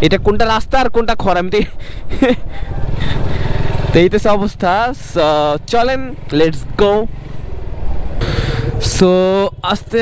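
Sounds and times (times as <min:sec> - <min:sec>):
motorcycle engine running: 0:02.5 - 0:10.0.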